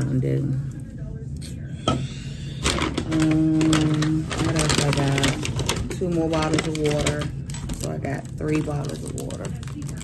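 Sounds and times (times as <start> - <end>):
woman's voice: 0.0 - 1.8, 2.7 - 10.0
bottles and bag rustling: 2.6 - 10.0.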